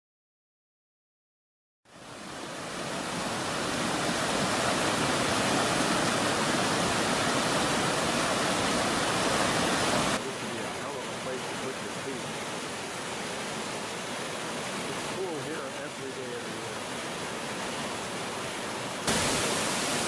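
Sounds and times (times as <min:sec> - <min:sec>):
creek rushing over boulders: 0:01.9 - 0:20.0
softer falling water: 0:01.9 - 0:20.0.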